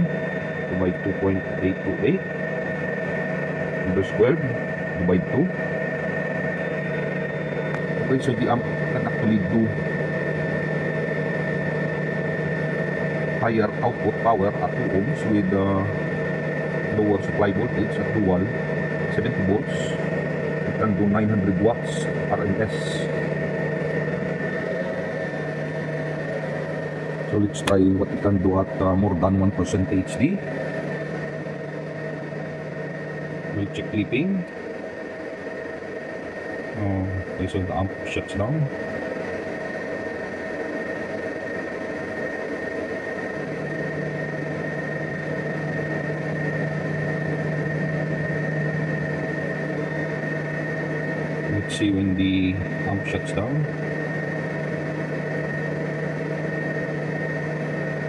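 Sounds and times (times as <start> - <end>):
electrical hum and whir: 0.0 - 58.0
thin high whine: 0.0 - 58.0.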